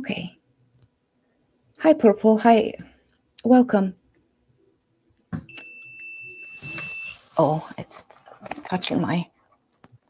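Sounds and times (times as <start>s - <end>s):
high-pitched electronic beep: 5.5s - 7.2s.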